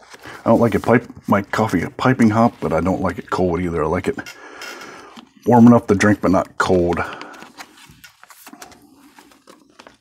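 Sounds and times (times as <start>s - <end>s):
card sliding into plastic sleeve: 6.0s - 10.0s.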